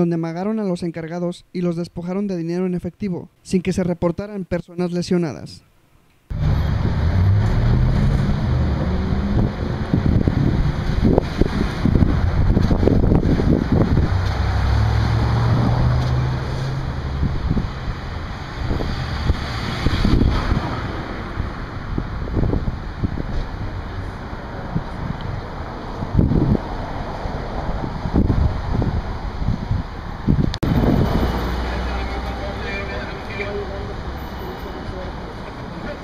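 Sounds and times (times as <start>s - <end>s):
street noise: 5.9s - 36.0s
wind buffeting microphone: 6.7s - 31.6s.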